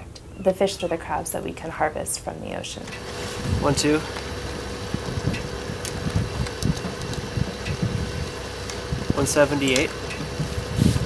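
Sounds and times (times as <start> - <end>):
boat engine idling: 3.0 - 11.0.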